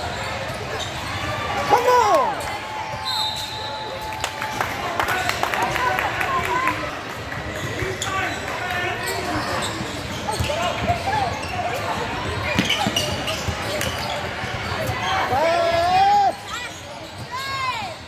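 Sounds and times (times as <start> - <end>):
sneakers squeaking on court: 0.0 - 1.4, 7.4 - 18.0.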